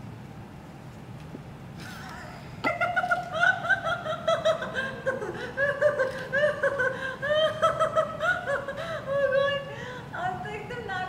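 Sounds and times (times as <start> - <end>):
young woman laughing: 1.8 - 9.8.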